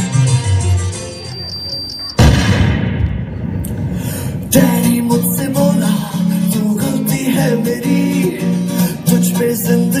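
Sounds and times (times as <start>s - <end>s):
loud boom with low rumble: 2.2s - 4.6s.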